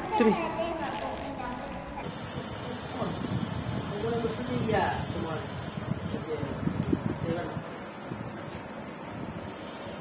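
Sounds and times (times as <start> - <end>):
small child's voice: 0.0 - 2.1.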